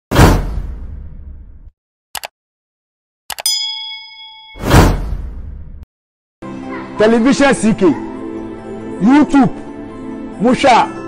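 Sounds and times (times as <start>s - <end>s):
bell ding: 3.4s - 4.9s.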